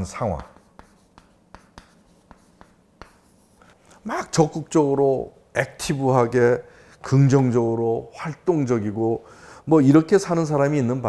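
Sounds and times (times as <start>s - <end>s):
chalk scratching on blackboard: 0.0s - 3.8s
chalk tapping on blackboard: 0.0s - 3.8s.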